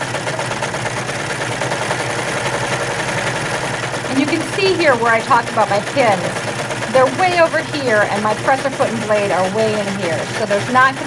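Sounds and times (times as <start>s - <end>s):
serger machine stitching: 0.0s - 11.0s.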